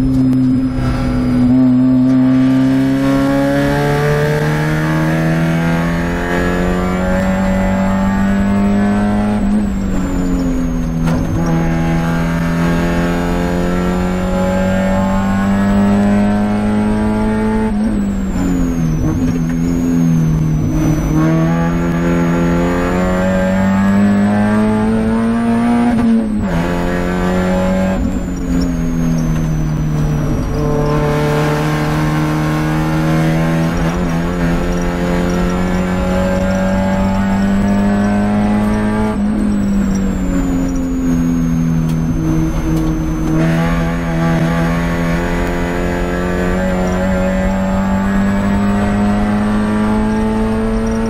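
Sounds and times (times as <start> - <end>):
race car engine pulling hard: 0.0 - 51.0.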